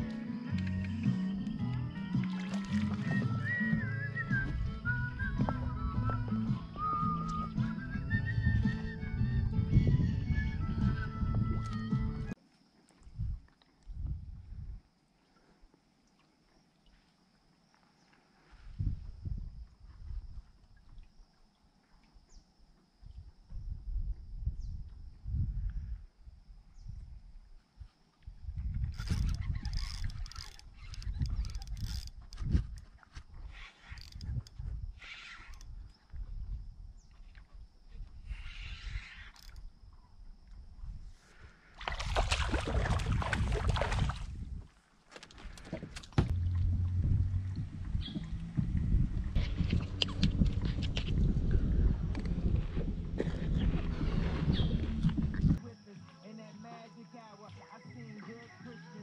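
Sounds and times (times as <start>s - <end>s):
wind buffeting microphone: 4.3s - 12.4s, 13.1s - 14.8s, 18.7s - 20.5s, 23.1s - 26.1s, 28.3s - 35.0s, 42.0s - 44.8s, 45.7s - 55.6s.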